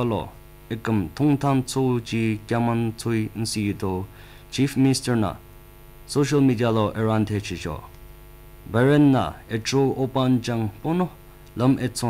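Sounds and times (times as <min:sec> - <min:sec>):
news reader speaking: 0:00.0 - 0:05.4, 0:06.1 - 0:08.0, 0:08.6 - 0:12.0
mains hum: 0:00.0 - 0:12.0.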